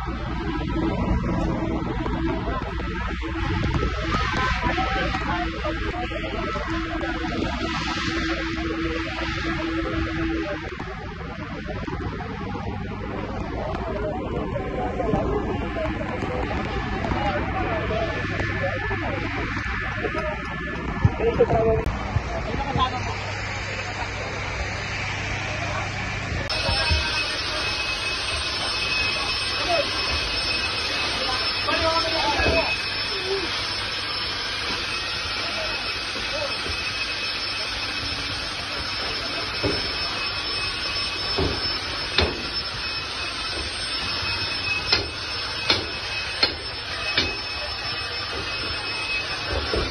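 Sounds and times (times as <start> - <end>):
fire engine motor droning: 0.0 - 49.9
high-pitched whine: 0.0 - 49.9
voices in the street: 0.0 - 49.9.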